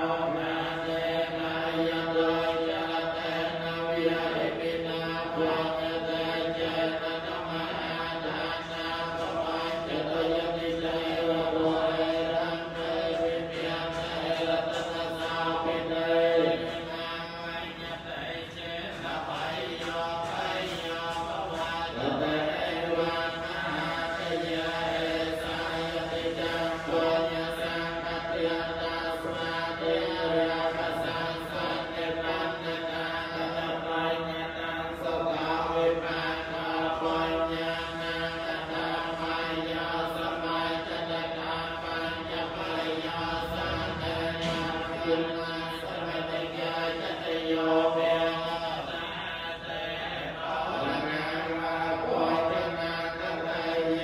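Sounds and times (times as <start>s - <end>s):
monks chanting: 0.0s - 54.0s.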